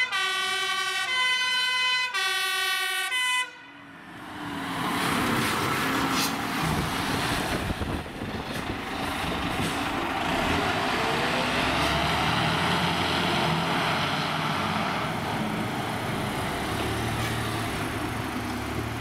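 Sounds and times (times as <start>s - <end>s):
diesel truck engine driving past: 3.9s - 19.0s.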